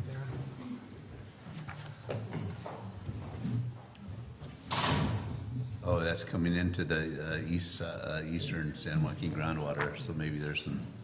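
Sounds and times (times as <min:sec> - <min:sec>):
door noise burst: 0:04.7 - 0:05.3.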